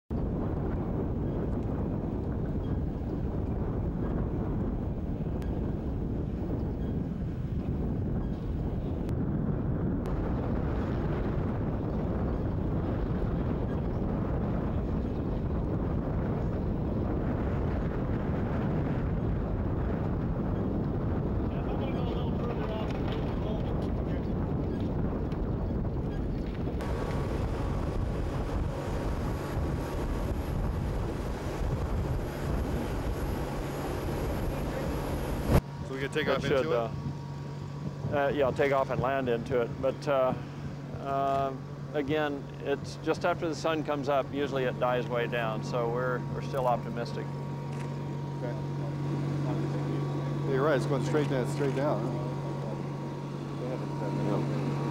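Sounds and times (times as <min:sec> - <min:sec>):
steady low hum: 0:00.1 - 0:54.9
wind buffeting microphone: 0:00.1 - 0:54.9.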